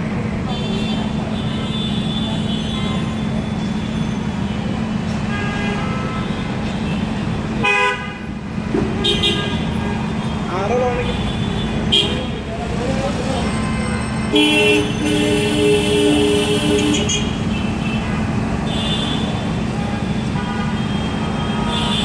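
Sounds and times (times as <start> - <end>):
traffic engine hum: 0.0 - 22.0
vehicle horn toots: 7.6 - 8.3, 8.9 - 10.1, 13.5 - 22.0.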